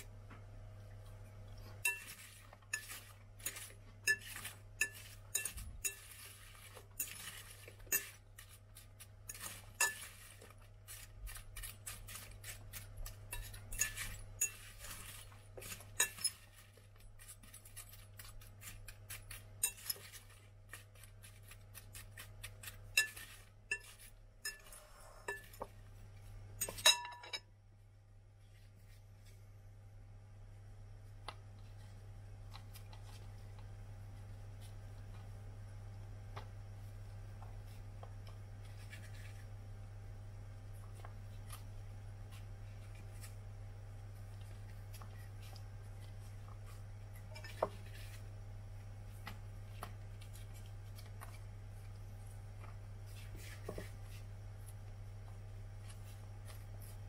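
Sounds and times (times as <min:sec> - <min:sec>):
apple pieces clinking in glass bowl: 0:01.8 - 0:20.4, 0:22.6 - 0:25.6, 0:26.6 - 0:27.4.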